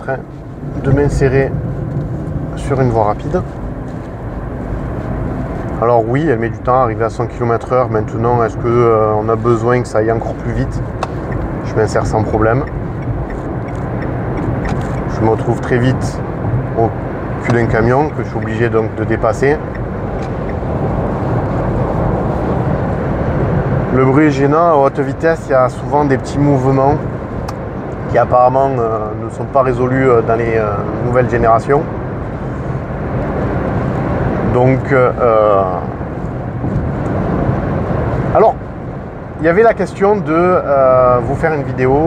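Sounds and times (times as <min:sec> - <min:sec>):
road noise inside car: 0:00.0 - 0:42.0
wind noise: 0:08.6 - 0:24.7, 0:30.6 - 0:39.5.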